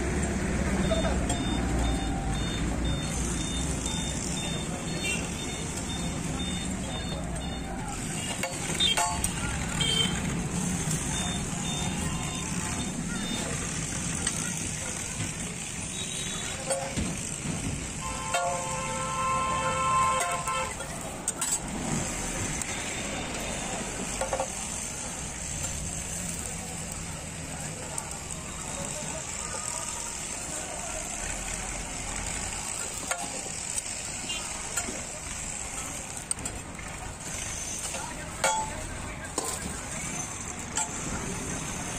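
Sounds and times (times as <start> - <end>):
street background: 0.0 - 41.9
oil sizzling on griddle: 23.4 - 36.3
metal utensils scraping on iron: 37.2 - 41.3.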